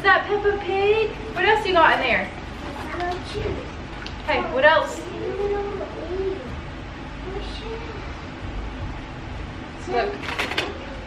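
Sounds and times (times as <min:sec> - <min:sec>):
small child vocal sounds: 0:05.0 - 0:06.6.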